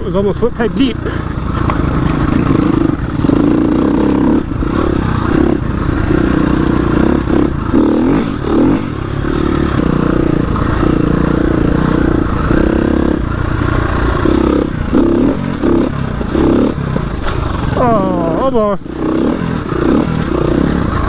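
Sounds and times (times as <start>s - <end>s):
bike clattering over rough trail: 0.0s - 21.0s
dirt bike engine revving: 0.0s - 21.0s.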